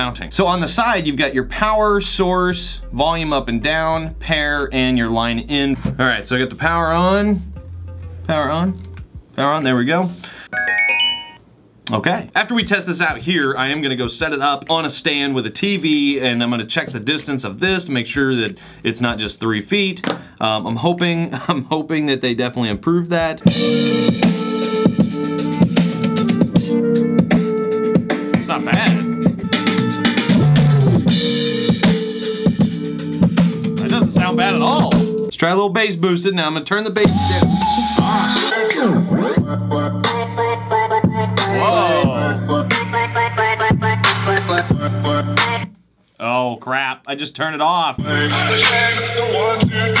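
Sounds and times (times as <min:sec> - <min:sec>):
song with drums and bass: 0:00.0 - 0:11.3, 0:23.2 - 0:35.3, 0:36.9 - 0:45.8, 0:48.0 - 0:50.0
electronic prompt chime: 0:10.5 - 0:11.4.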